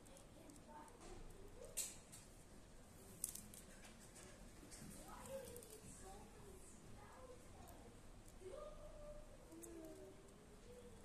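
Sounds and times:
plastic wires rustling and ticking: 0:00.0 - 0:02.4, 0:03.0 - 0:06.5.

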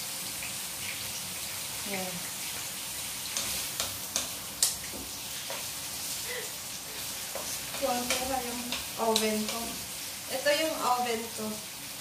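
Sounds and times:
food sizzling in a frying pan: 0:00.0 - 0:12.0
wooden spatula knocking on pan: 0:03.4 - 0:05.7, 0:07.3 - 0:09.8.

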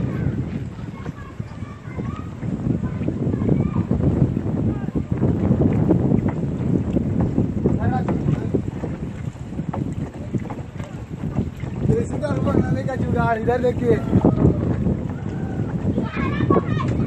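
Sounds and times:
water sloshing in a drum: 0:00.0 - 0:17.0
wind buffeting microphone: 0:00.0 - 0:17.0.

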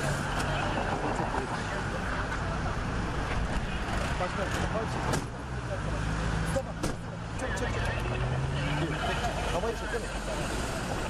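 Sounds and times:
road traffic: 0:00.0 - 0:11.0
voices talking: 0:00.0 - 0:11.0.

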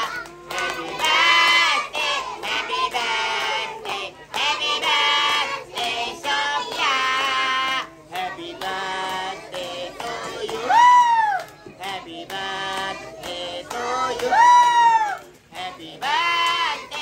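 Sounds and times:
child singing: 0:00.0 - 0:10.8, 0:15.5 - 0:17.0
people clapping along: 0:00.0 - 0:17.0.

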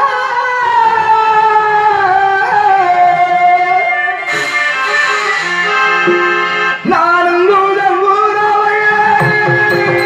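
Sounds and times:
harmonium holding notes: 0:01.7 - 0:10.0
drum accompaniment: 0:04.3 - 0:06.9, 0:09.0 - 0:10.0
person singing: 0:06.8 - 0:10.0.

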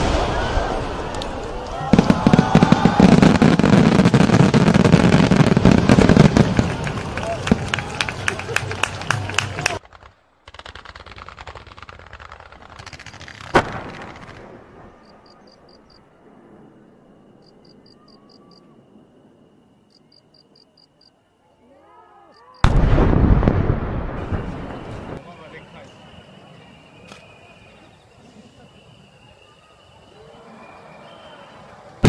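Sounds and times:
firework bang: 0:00.0 - 0:07.7, 0:09.7 - 0:15.1, 0:22.6 - 0:25.2
fireworks crackling: 0:00.0 - 0:16.7, 0:22.6 - 0:30.2.

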